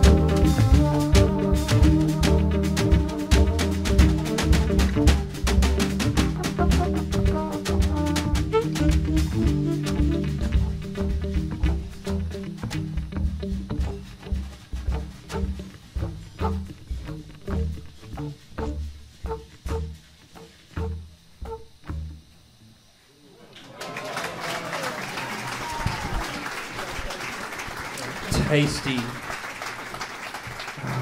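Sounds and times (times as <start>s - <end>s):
jazz band playing bossa nova: 0.0s - 21.7s
upright bass: 0.0s - 22.3s
audience applause and cheers: 23.4s - 31.0s.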